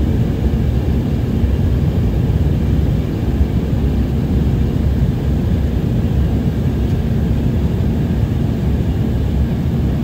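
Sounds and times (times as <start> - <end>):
jet cabin engine roar: 0.0 - 10.0.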